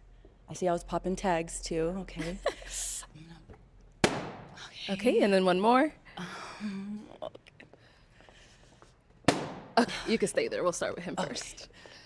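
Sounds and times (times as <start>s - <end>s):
balloon popping: 4.0s - 4.5s.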